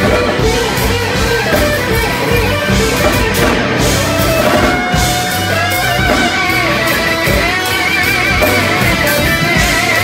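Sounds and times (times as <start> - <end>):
live funk band playing: 0.0 - 10.0.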